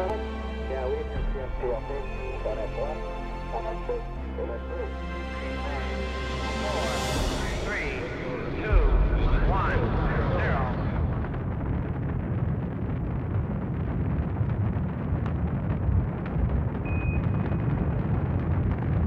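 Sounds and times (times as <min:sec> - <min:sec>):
deep boom: 0:00.0 - 0:19.0
deep rumbling rush: 0:00.0 - 0:19.0.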